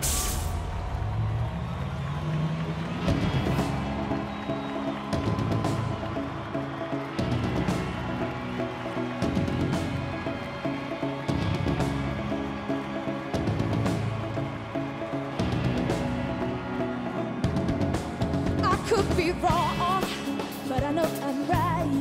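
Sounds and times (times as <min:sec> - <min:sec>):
cymbal crashes: 0:00.0 - 0:00.8
live band instrumental: 0:03.0 - 0:22.0.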